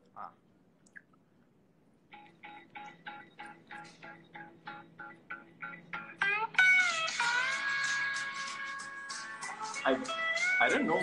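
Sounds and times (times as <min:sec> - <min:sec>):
country song through phone speaker: 0:02.4 - 0:11.0.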